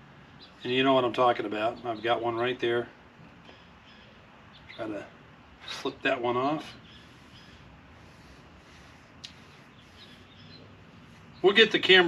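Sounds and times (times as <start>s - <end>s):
distant bird chirps: 0.0s - 12.0s.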